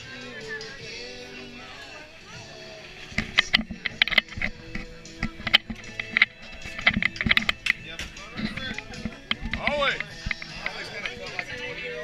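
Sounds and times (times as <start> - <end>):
people talking: 0.0 - 6.0, 7.7 - 12.0
background music: 0.0 - 12.0.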